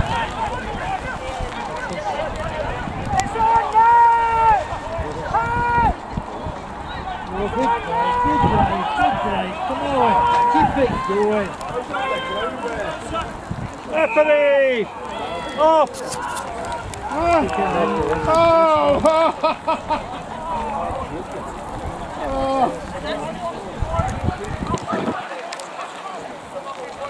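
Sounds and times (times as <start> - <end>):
players shouting calls: 0.0 - 27.0.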